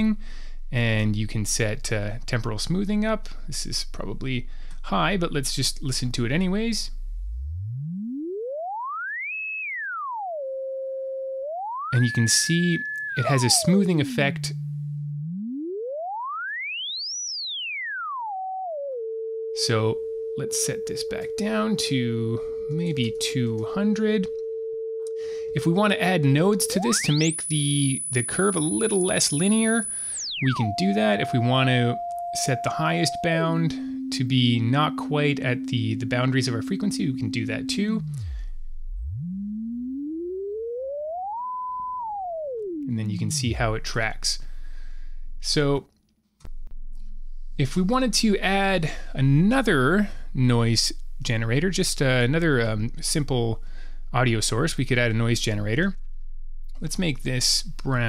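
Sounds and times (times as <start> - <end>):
gliding sine tone: 1.9 - 45.8, 46.5 - 58.0.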